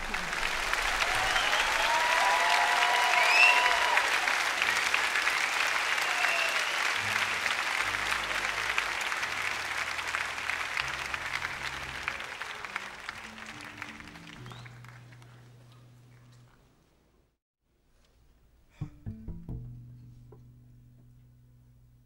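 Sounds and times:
large audience applauding: 0.0 - 16.4
people cheering: 0.0 - 16.4.

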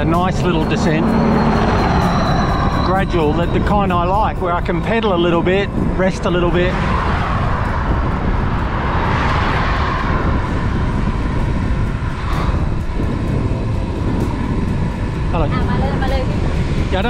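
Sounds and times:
passing vehicle road noise: 0.0 - 17.0
wind rumble on microphone: 0.0 - 17.0.

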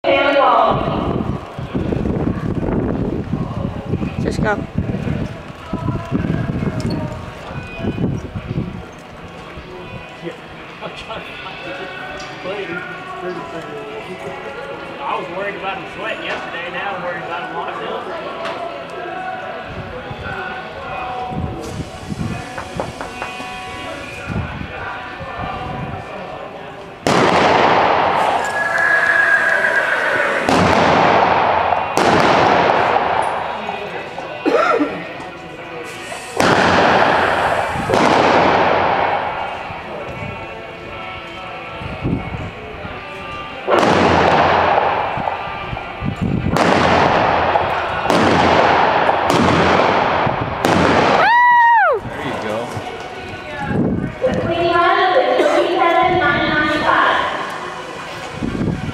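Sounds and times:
high tone rising and falling: 28.4 - 30.5
revolver shots with echo: 30.4 - 33.8, 36.4 - 39.7, 46.6 - 51.2
revolver shots echoing: 46.6 - 51.2.

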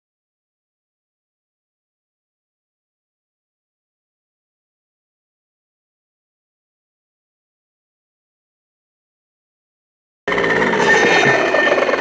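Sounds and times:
brush cutter engine buzzing: 10.3 - 12.0.

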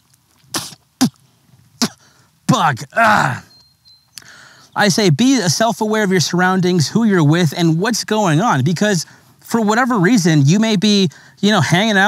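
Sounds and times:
man coughing: 1.8 - 3.5.

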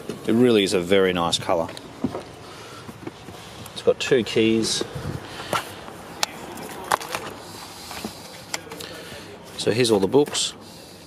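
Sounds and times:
papers rustling: 5.4 - 8.9.

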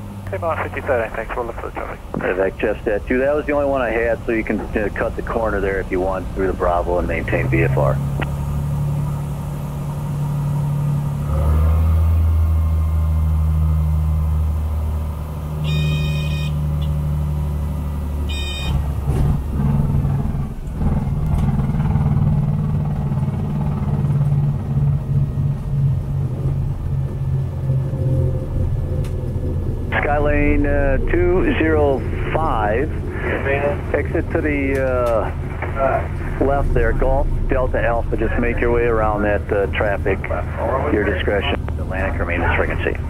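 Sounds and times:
airplane engine and propeller: 0.0 - 43.0
wheels rumbling on runway: 0.0 - 43.0
short high beeps: 15.6 - 16.6.

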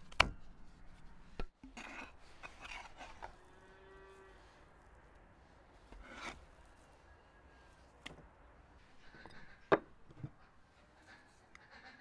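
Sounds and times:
faint cow mooing: 3.4 - 4.5.

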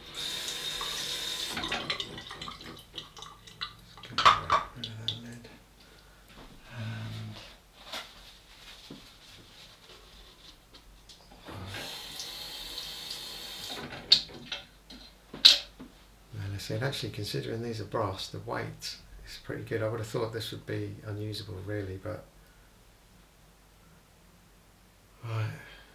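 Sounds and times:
tap water running into sink: 0.0 - 5.2, 11.8 - 14.6.

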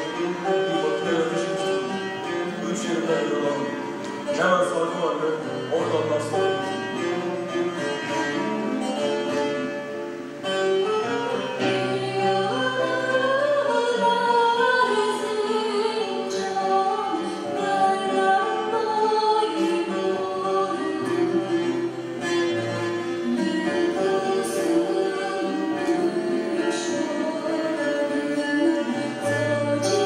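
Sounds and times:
plucked string instrument: 0.0 - 30.0
woman singing into a microphone: 11.5 - 22.2, 23.2 - 30.0.

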